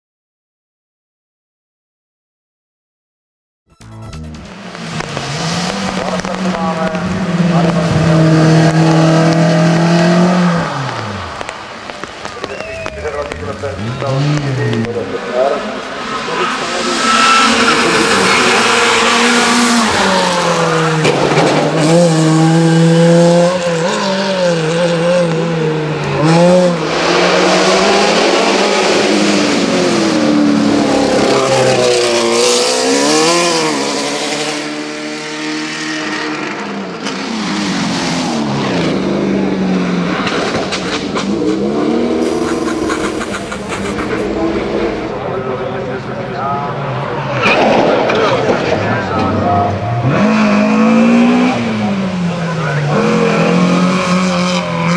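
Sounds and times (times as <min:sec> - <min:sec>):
racing cars revving past: 0:04.5 - 0:54.9.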